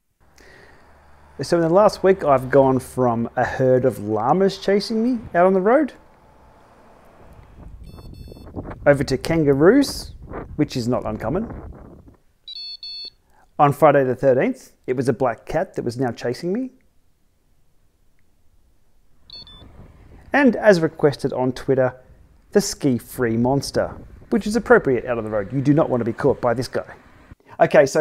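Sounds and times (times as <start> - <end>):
low outdoor rumble: 0.2 - 12.3, 18.4 - 27.4
two-part electronic beep: 7.8 - 8.5, 12.5 - 13.2, 19.3 - 19.7.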